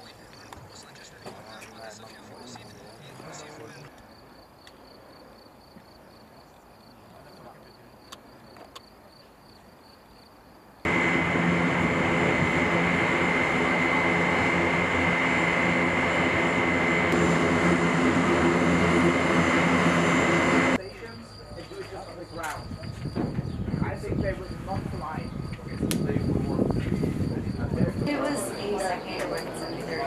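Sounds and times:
faint insect chirring: 4.0s - 10.8s
turbine aircraft engines running: 10.9s - 30.0s.

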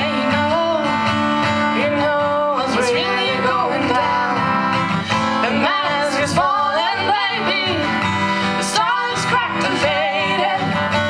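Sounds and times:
acoustic guitar strummed: 0.0s - 11.0s
person singing: 0.0s - 11.0s.

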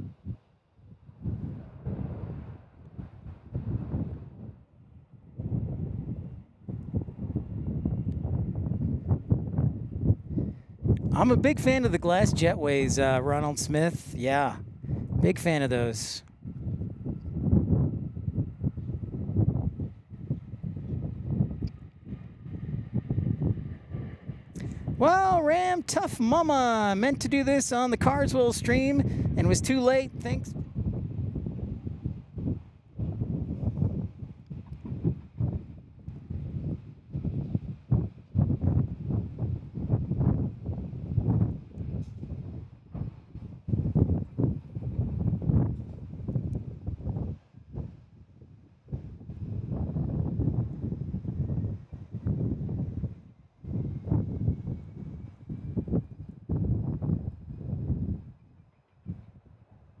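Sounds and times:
gusty wind buffeting microphone: 0.0s - 60.0s.

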